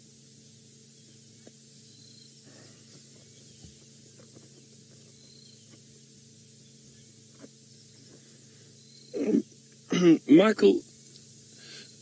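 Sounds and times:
low steady hum: 0.0 - 12.0
person clearing throat: 9.2 - 10.3.

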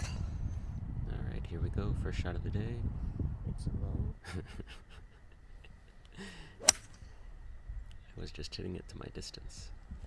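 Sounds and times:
person laughing: 4.2 - 6.5
golf club striking ball: 6.6 - 7.1.

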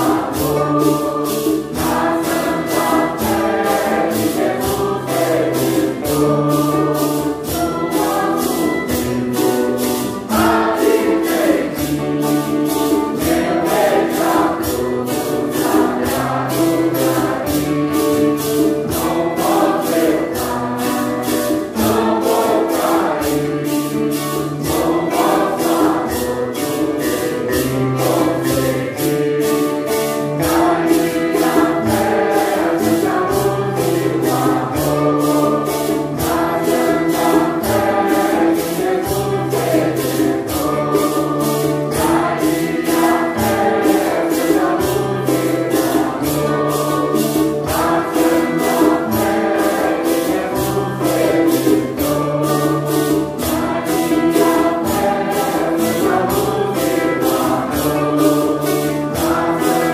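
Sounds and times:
congregation singing a hymn: 0.0 - 59.9
maracas shaken in a beat: 0.0 - 59.9.

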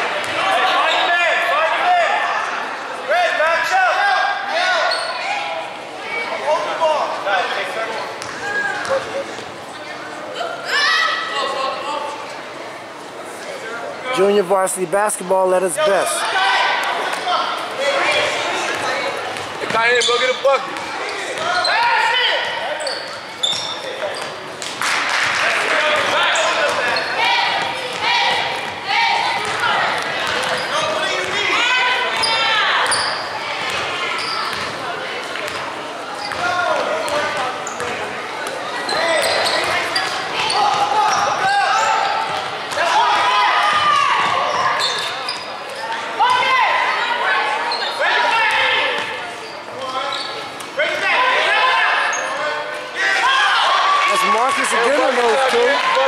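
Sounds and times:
players' voices: 0.0 - 56.0
sneakers squeaking: 4.8 - 5.5, 8.1 - 9.8, 17.1 - 43.0, 43.6 - 50.8, 51.9 - 52.8
basketball bouncing: 27.6 - 30.6, 34.5 - 34.8, 42.2 - 42.8.

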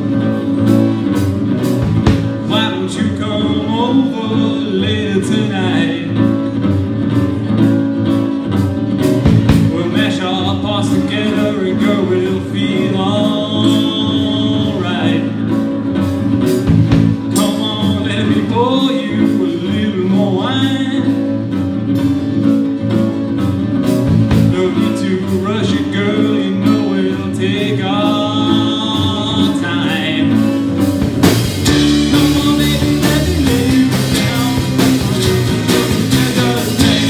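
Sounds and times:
drum kit with hi-hat: 0.0 - 2.8, 6.2 - 11.5, 15.6 - 18.4, 22.0 - 26.9, 29.9 - 37.0
acoustic guitars: 0.0 - 37.0
bass guitar: 0.0 - 37.0
person singing: 2.2 - 6.7, 9.4 - 15.9, 17.0 - 21.6, 24.3 - 31.0, 31.6 - 37.0.

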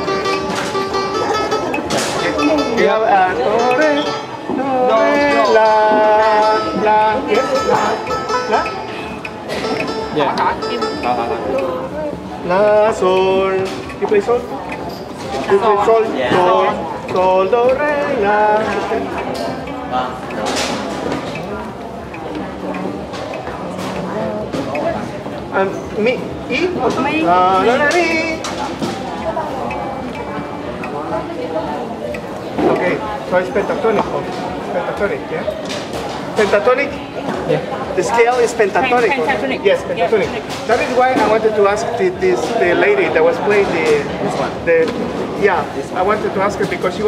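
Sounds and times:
plucked monochord notes: 0.0 - 12.5
people talking: 0.0 - 47.0.

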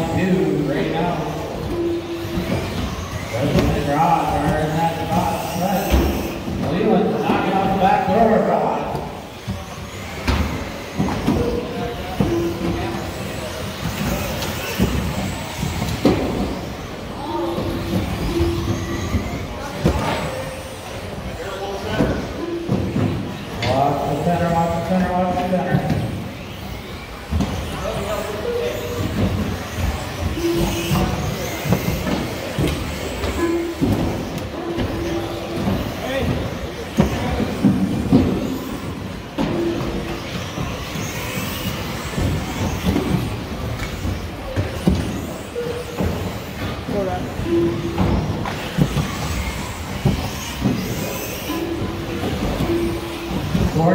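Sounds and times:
rc car motor whine: 0.0 - 53.9
voices in a hall: 0.0 - 53.9.

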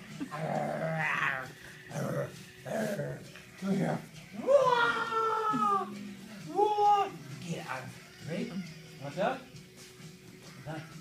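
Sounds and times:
dog whining: 0.2 - 3.3.

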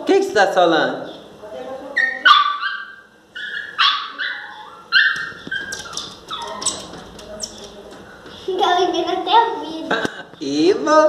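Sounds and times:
dog whining and yelping: 2.0 - 6.9.

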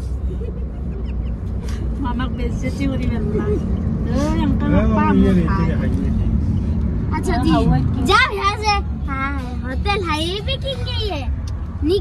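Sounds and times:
road and engine rumble in car: 0.0 - 12.0
voices talking: 0.4 - 12.0.

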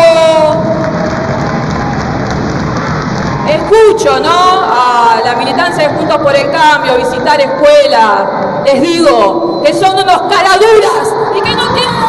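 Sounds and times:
audience applauding: 0.5 - 3.7.

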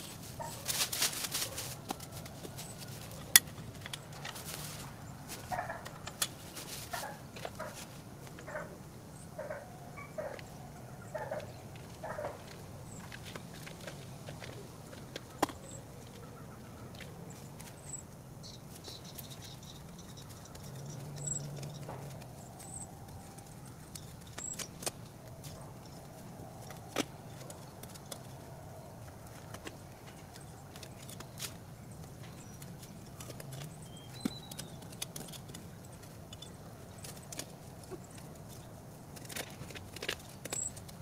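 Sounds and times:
trowel scraping soil and leaves: 0.0 - 8.0.

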